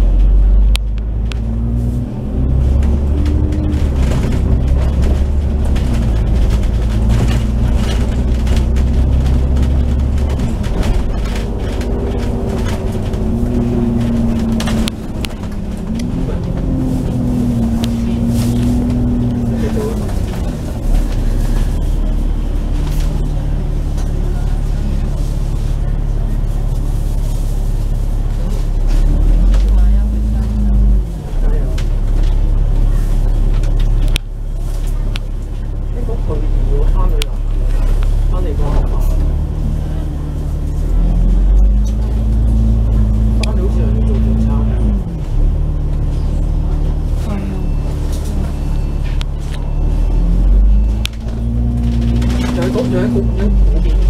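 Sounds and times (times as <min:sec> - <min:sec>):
bus body rattles: 0:00.0 - 0:54.0
bus engine rumble with whine: 0:00.0 - 0:54.0.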